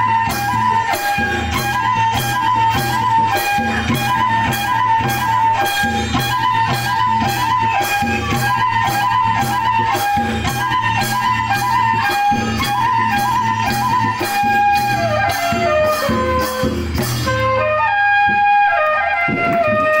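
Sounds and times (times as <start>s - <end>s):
flute melody: 0.0s - 20.0s
percussion beat: 0.0s - 20.0s.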